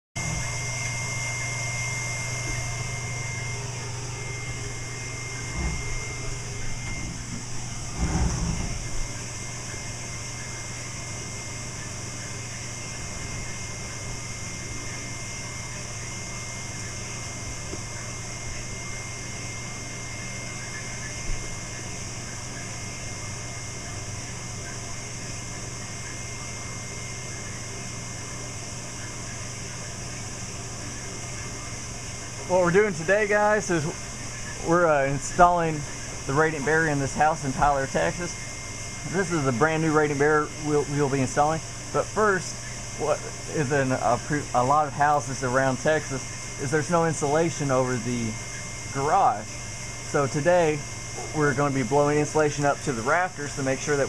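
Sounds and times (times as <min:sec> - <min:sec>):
insulation blowing machine humming: 0:00.2 - 0:54.0.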